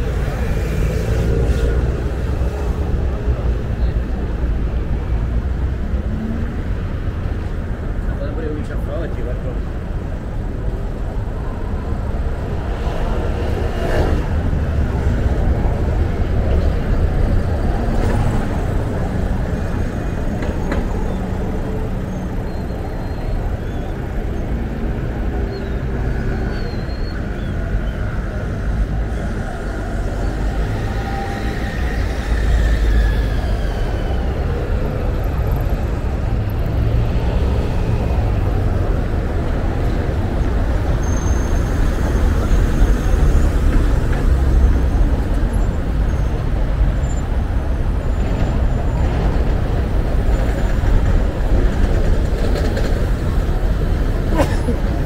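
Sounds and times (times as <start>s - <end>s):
traffic rumble: 0.0s - 55.0s.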